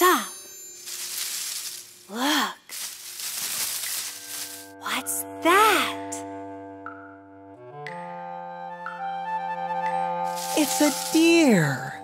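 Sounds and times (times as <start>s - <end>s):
rustling hissing noise: 0.8s - 2.1s, 2.7s - 4.7s, 10.3s - 11.4s.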